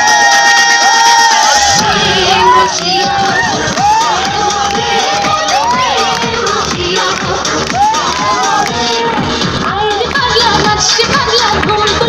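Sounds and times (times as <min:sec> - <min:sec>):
audience cheering and shouting: 0:00.0 - 0:12.0
dance music: 0:00.0 - 0:12.0.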